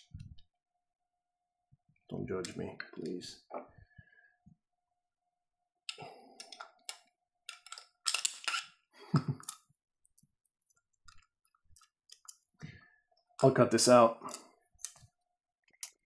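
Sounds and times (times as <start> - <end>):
small metal parts clicking: 6.4 - 8.7, 11.1 - 12.4.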